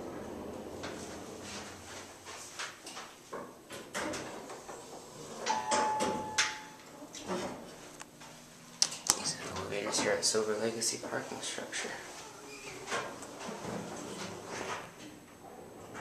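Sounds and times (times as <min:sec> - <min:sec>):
elevator chime: 0:05.5 - 0:06.8.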